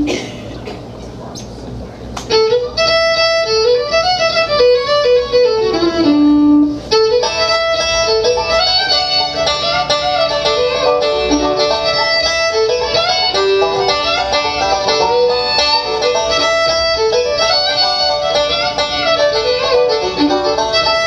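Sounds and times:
picked banjo: 0:00.0 - 0:00.8, 0:02.2 - 0:21.0
fiddle melody: 0:02.2 - 0:21.0
bowed cello: 0:02.3 - 0:21.0.

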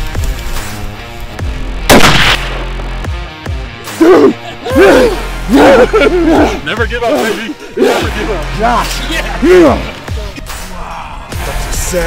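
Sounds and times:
background music: 0:00.0 - 0:12.0
rifle shot: 0:01.9 - 0:02.9.

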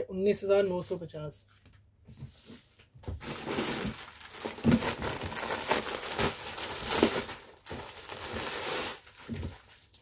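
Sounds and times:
plastic bag crinkling: 0:03.2 - 0:10.0.

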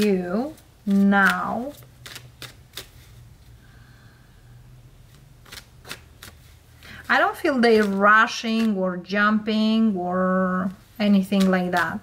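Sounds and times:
cards clicking while shuffled: 0:00.5 - 0:03.1, 0:05.1 - 0:06.5, 0:11.2 - 0:12.0.

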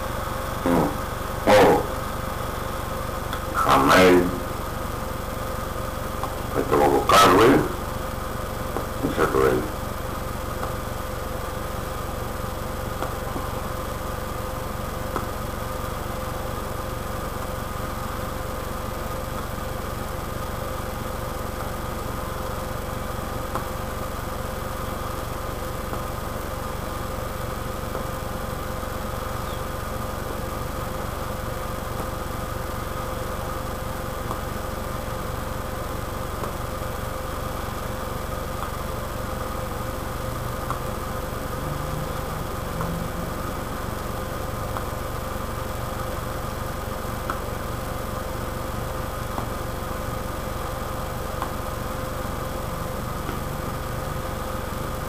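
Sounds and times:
low mechanical hum: 0:00.0 - 0:55.0.

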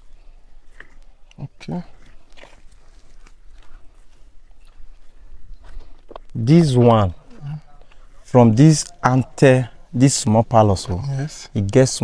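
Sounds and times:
footsteps and scuffs: 0:01.9 - 0:08.1.

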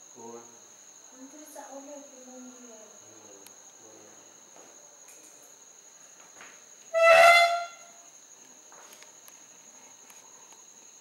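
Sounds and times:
high-pitched insect chorus: 0:00.0 - 0:11.0
loud honk-like tone: 0:06.9 - 0:07.9.

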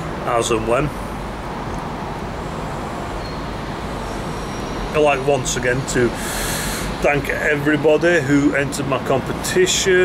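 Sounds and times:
background rumble and hiss: 0:00.0 - 0:10.0.

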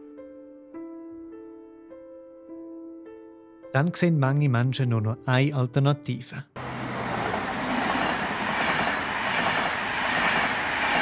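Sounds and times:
train passing at speed: 0:06.6 - 0:11.0.

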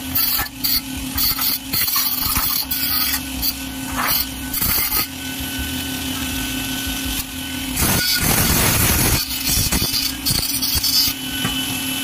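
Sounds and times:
grinder rasping on metal: 0:00.0 - 0:05.2, 0:07.2 - 0:11.6
angle grinder whining: 0:00.0 - 0:12.0.

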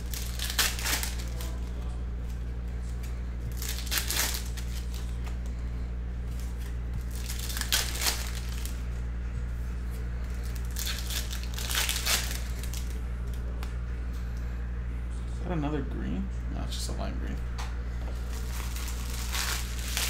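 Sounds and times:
wrappers tearing and crinkling: 0:00.0 - 0:05.4, 0:06.3 - 0:08.9, 0:10.3 - 0:13.5, 0:18.2 - 0:20.0.

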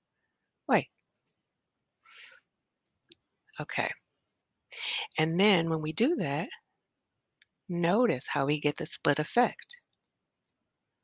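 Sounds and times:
computer mouse clicks: 0:01.1 - 0:01.4, 0:09.7 - 0:10.8.

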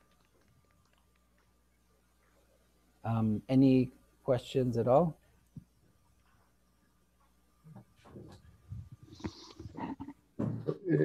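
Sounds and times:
person's throat and breath noises: 0:08.7 - 0:10.7.

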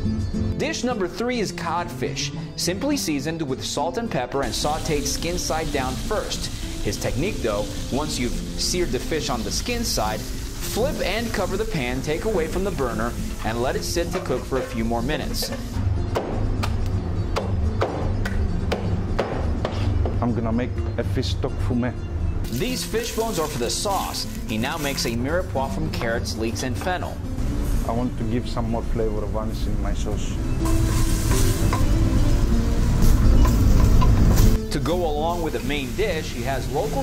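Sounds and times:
background music: 0:00.0 - 0:37.0
vegetables sizzling in a pot: 0:04.4 - 0:15.8, 0:22.5 - 0:25.8, 0:30.5 - 0:37.0.

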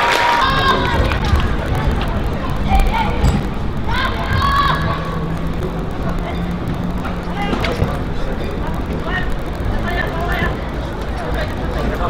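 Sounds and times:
outdoor background noise: 0:00.0 - 0:12.0
steady low hum: 0:00.0 - 0:12.0.

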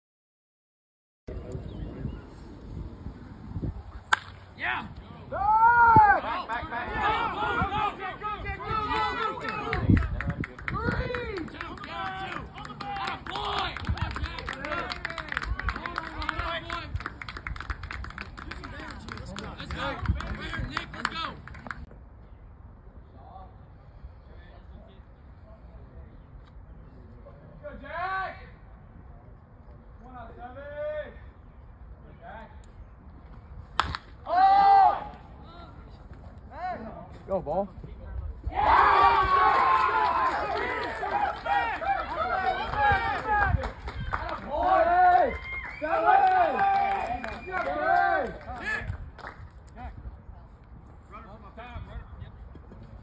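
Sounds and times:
baseball bat hitting ball: 0:04.1 - 0:04.4, 0:33.8 - 0:34.1
crowd cheering and calling out: 0:05.3 - 0:09.9, 0:38.5 - 0:48.9
people clapping: 0:08.8 - 0:21.9, 0:39.2 - 0:49.8.

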